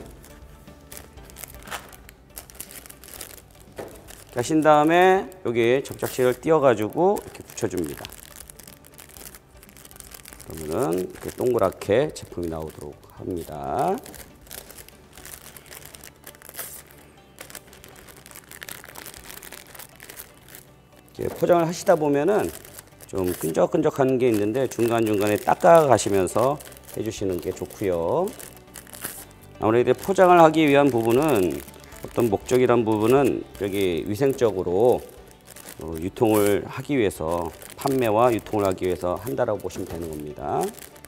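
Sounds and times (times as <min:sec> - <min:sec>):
plastic bag crinkling: 0:00.0 - 0:41.0
quiet background music: 0:00.0 - 0:41.0.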